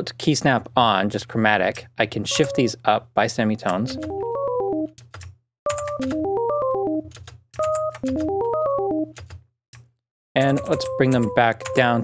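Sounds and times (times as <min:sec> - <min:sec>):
synthesized arpeggio: 0:03.8 - 0:05.0, 0:05.7 - 0:09.2, 0:10.6 - 0:12.0.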